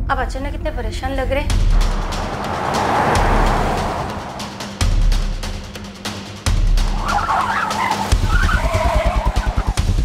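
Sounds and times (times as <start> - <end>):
car tyre skid: 1.8 - 4.9, 6.8 - 9.8
music with pulsing low beat: 3.3 - 10.0.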